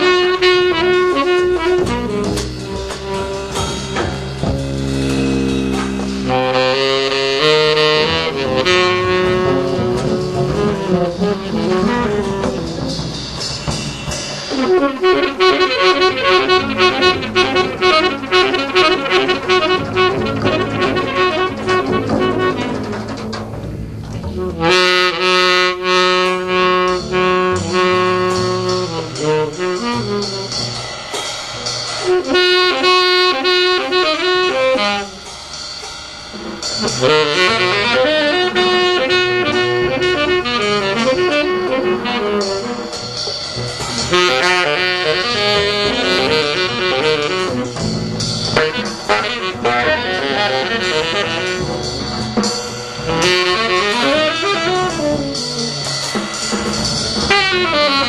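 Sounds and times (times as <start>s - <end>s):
free jazz saxophone flurries: 0.0s - 31.2s, 31.9s - 35.3s, 36.7s - 58.0s.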